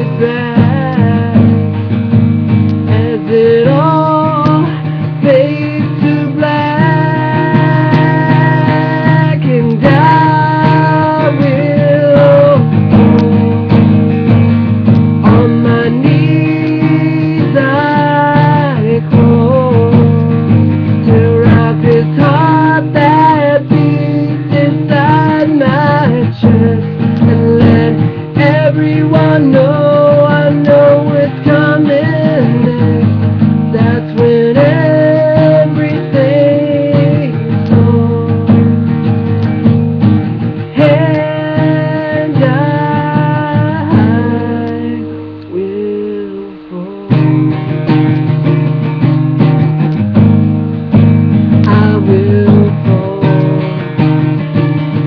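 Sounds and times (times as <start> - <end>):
man singing: 0.0 - 47.7, 51.5 - 55.0
acoustic guitar: 0.0 - 55.0.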